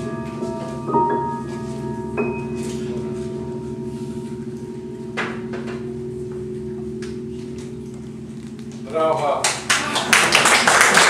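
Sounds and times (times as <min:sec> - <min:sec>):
piano chord held: 0:00.0 - 0:11.0.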